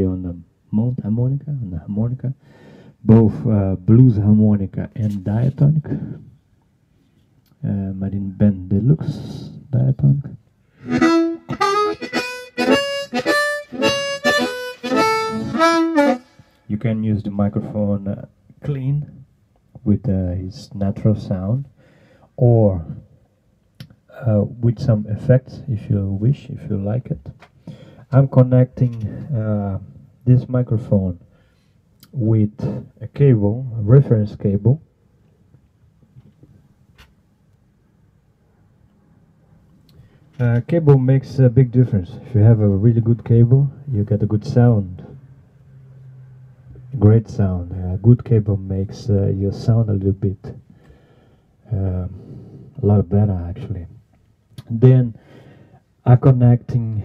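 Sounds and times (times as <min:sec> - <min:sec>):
harmonica melody: 0:10.8 - 0:16.6.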